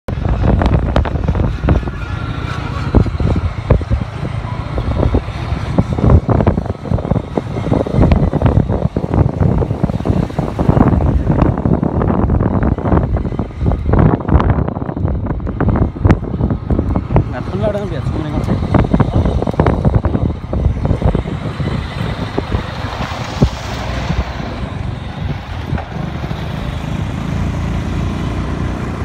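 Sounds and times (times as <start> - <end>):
motorcycle engine running: 0.1 - 29.0
wind buffeting microphone: 0.1 - 29.0.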